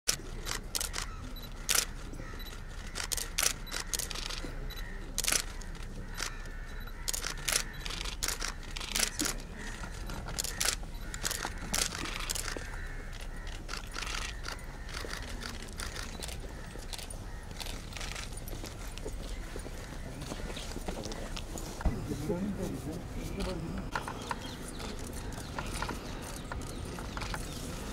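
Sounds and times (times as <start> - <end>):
camera shutters clicking: 0.1 - 4.5, 5.2 - 6.4, 7.0 - 9.4, 10.3 - 12.6, 13.2 - 18.4.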